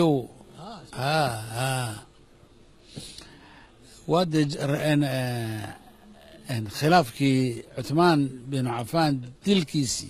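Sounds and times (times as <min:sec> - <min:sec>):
man talking: 0:00.0 - 0:02.1, 0:04.0 - 0:10.0.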